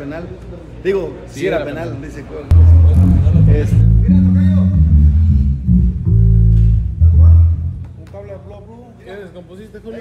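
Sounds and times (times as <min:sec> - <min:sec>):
electric bass guitar plucked: 0:02.5 - 0:07.9.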